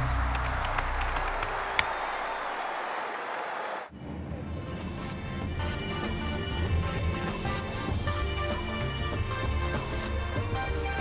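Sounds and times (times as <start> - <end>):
applause and crowd noise: 0.0 - 4.0
background music with steady beat: 4.4 - 11.0.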